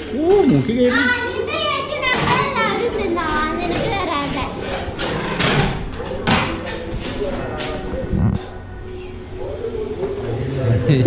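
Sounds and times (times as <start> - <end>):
children talking and calling out: 0.0 - 5.0.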